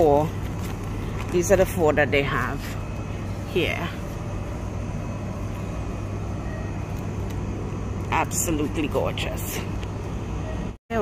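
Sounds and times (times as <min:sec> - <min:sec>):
low hum: 0:00.0 - 0:10.8.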